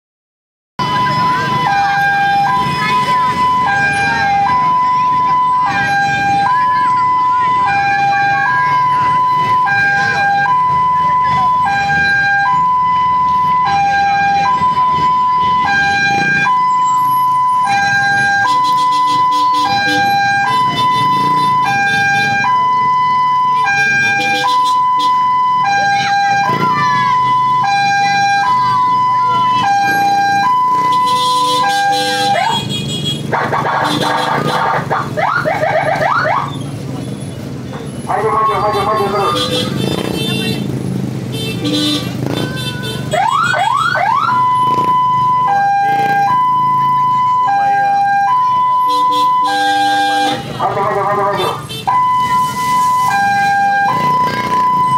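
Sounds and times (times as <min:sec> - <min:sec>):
two-tone hi-lo siren: 0:00.8 - 0:32.7, 0:33.3 - 0:36.6, 0:43.1 - 0:54.9
harsh rough siren: 0:00.8 - 0:36.9, 0:38.0 - 0:40.0, 0:41.6 - 0:54.9.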